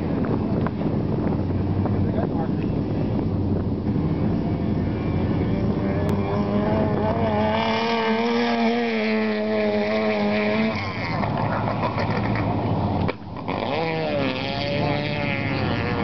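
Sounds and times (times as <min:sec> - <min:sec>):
race car engine at high revs: 0:00.0 - 0:16.0
wind rumbling on microphone: 0:00.0 - 0:16.0.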